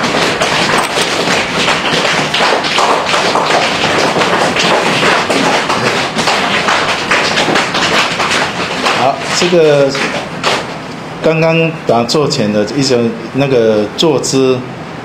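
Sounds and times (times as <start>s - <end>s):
people patting legs with hands: 0.0s - 10.8s.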